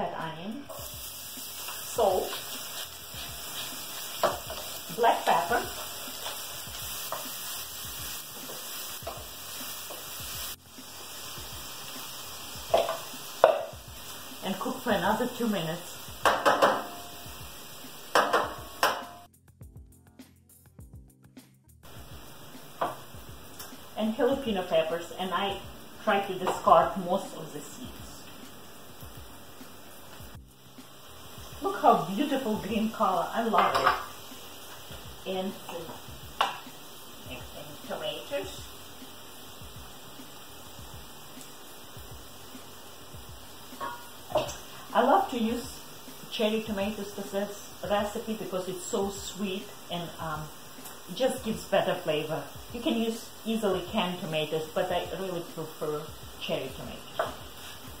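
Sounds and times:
onion sizzling in a pan: 0.0 - 19.3, 21.8 - 58.0
wooden spoon scraping a pan: 1.6 - 7.4, 57.2 - 58.0.

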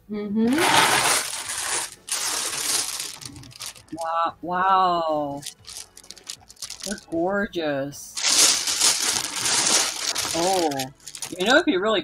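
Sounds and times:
glass marbles clinking in plastic bag: 0.5 - 4.0, 5.3 - 7.0, 8.2 - 11.6.

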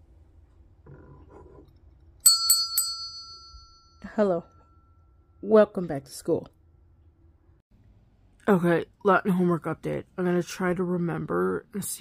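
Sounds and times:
hand bell ringing: 2.2 - 4.1.

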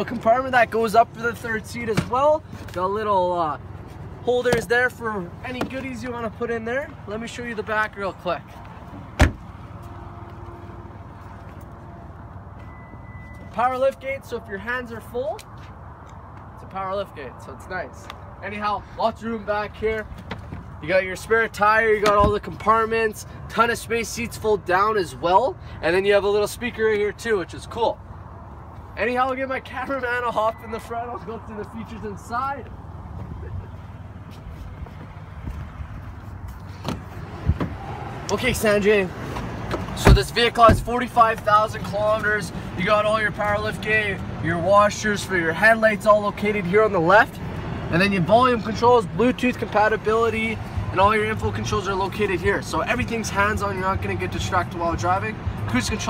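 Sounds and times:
car door shutting thud: 9.2 - 9.4, 36.8 - 37.8, 39.7 - 40.9.

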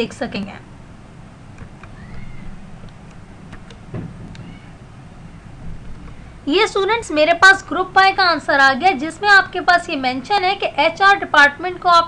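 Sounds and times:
low electrical hum: 0.0 - 12.0
faint high rising and falling call: 1.9 - 2.6.

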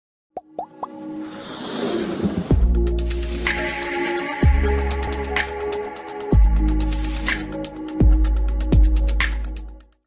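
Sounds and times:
rising plop sound effects: 0.4 - 1.0
building music: 0.6 - 9.1
swelling riser: 1.2 - 3.6.

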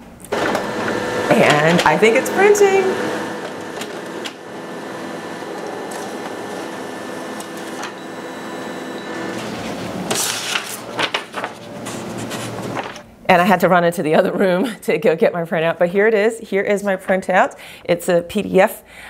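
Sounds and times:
printer whirring hum: 0.3 - 13.1.

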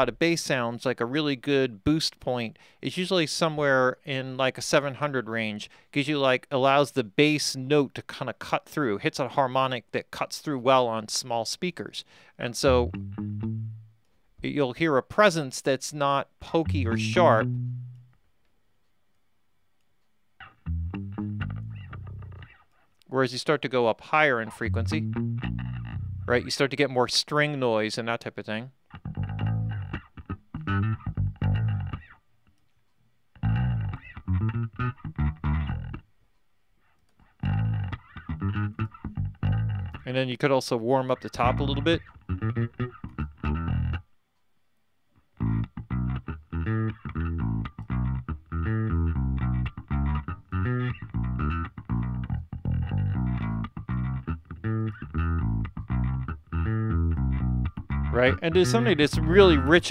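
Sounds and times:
electric bass guitar phrase: 0.0 - 0.2, 12.6 - 14.0, 16.4 - 18.1, 20.4 - 22.5, 24.4 - 26.6, 29.0 - 32.1, 33.4 - 36.0, 37.4 - 40.2, 41.2 - 44.0, 45.4 - 59.9.

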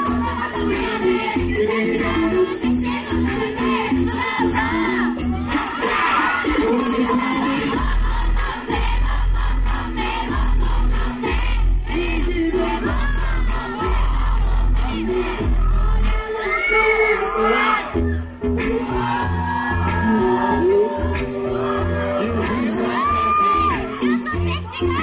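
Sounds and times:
crowd shouting and singing along: 0.0 - 25.0
heavy bass line: 0.0 - 25.0
hip-hop song over pa: 0.0 - 25.0.

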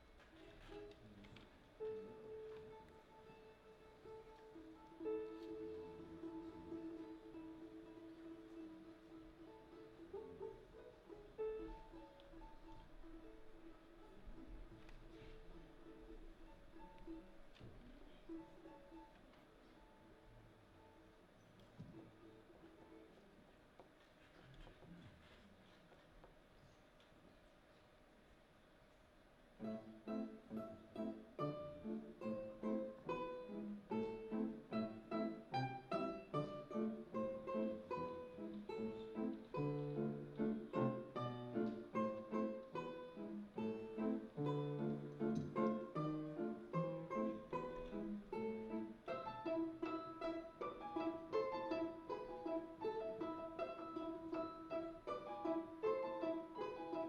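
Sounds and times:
plucked balalaika: 1.8 - 20.2, 29.6 - 57.0.

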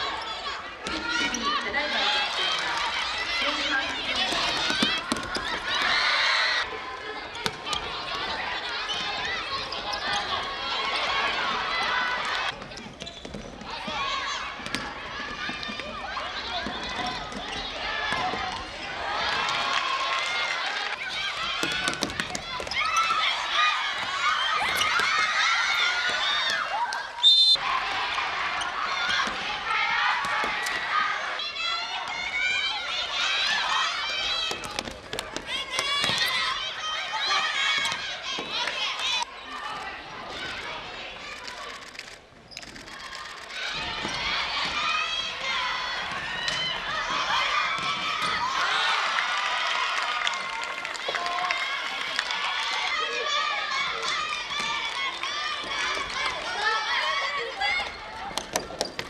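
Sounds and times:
young players shouting: 13.7 - 41.8, 42.9 - 58.4
referee's whistle blast: 27.2 - 27.6.

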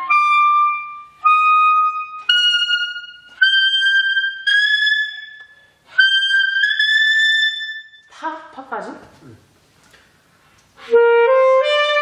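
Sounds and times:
alto saxophone high held notes: 0.0 - 5.2, 10.8 - 12.0.

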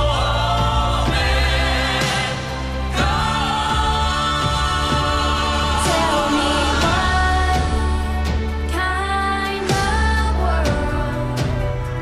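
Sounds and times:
gospel choir singing: 0.0 - 10.6
instrumental accompaniment with bass: 0.0 - 12.0.

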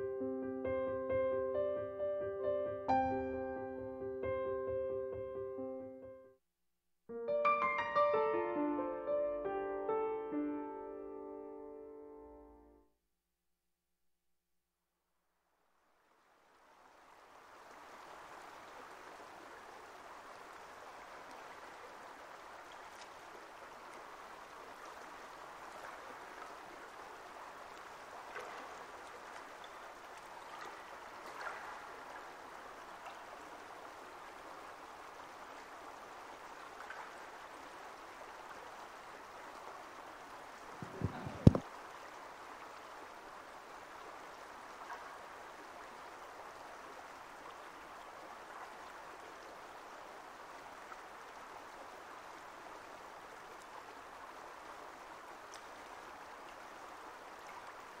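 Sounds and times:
stream of running water: 15.9 - 58.0
loud double thump: 40.8 - 41.6.

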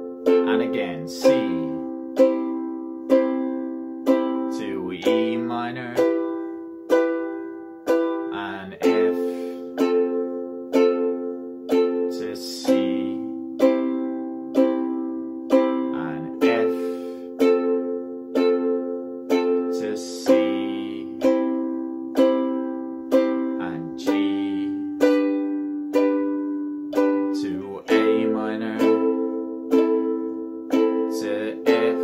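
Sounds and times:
ukulele strummed slowly: 0.0 - 32.0.

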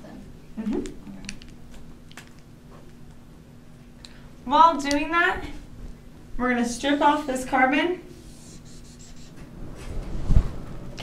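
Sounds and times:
marker strokes on whiteboard: 8.2 - 9.4.

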